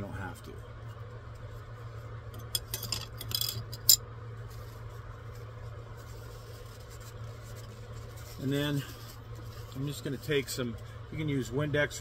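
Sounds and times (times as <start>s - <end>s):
steady low hum: 0.0s - 12.0s
clinks against metal funnel: 2.4s - 4.0s.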